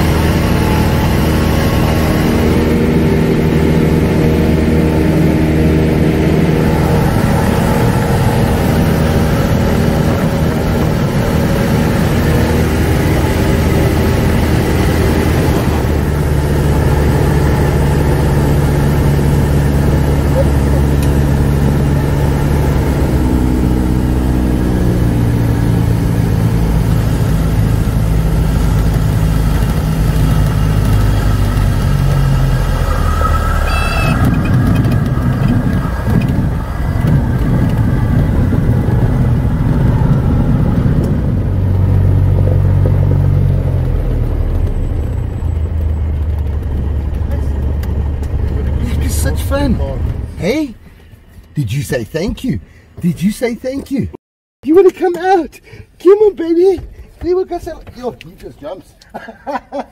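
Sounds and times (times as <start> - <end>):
rumble of rolling on grass: 0.0 - 33.2, 34.2 - 50.3
airplane engine and propeller: 0.0 - 51.6.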